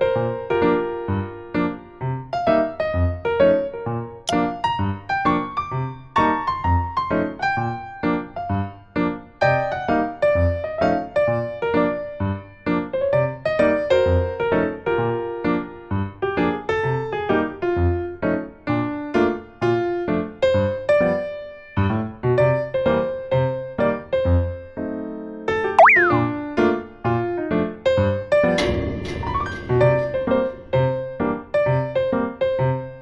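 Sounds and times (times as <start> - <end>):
sliding-pitch sound effect: 25.8 - 26.3
bouncy plucked keyboard music: 25.8 - 26.4.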